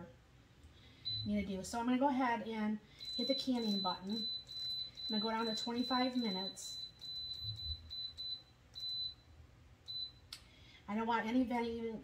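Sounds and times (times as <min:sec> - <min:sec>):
control panel beeps: 0:01.1 - 0:01.4, 0:03.0 - 0:09.2.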